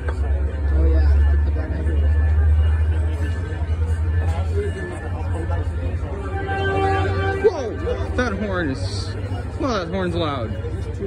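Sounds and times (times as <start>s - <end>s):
passenger train rumbling: 0.0s - 11.0s
loud train horn chord: 2.2s - 9.2s.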